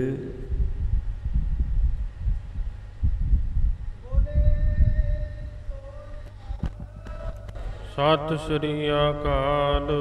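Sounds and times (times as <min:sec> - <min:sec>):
wind buffeting microphone: 0:00.4 - 0:10.0.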